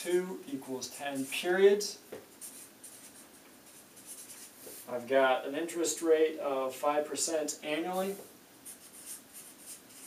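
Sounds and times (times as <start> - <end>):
marker scratching on paper: 2.3 - 4.9, 8.0 - 10.0.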